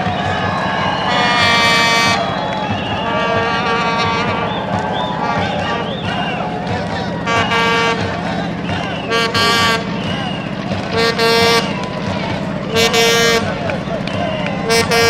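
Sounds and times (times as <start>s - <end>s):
crowd chatter: 0.0s - 15.0s
horn tooting: 0.0s - 15.0s.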